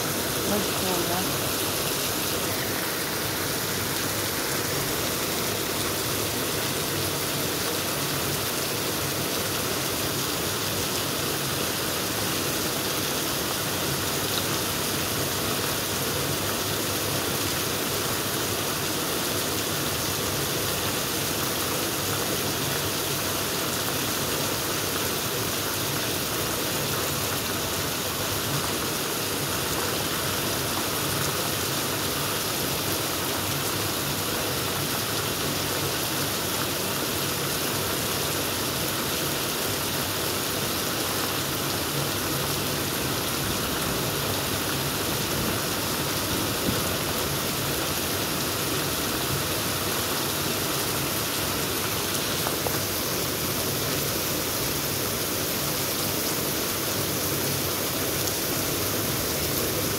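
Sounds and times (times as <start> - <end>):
heavy rain on street and cars: 0.0 - 59.9.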